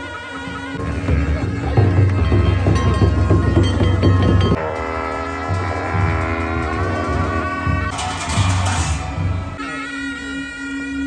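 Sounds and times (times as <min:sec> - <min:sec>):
long reed horns sustained notes: 0:00.0 - 0:11.0
large drum strokes: 0:00.8 - 0:09.7.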